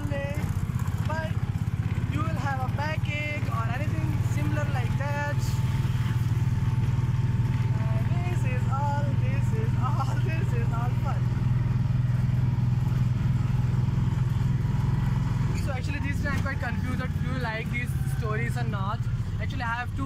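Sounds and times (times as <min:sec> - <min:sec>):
auto-rickshaw engine droning: 0:00.0 - 0:20.0
person talking: 0:02.0 - 0:05.6, 0:07.7 - 0:11.3.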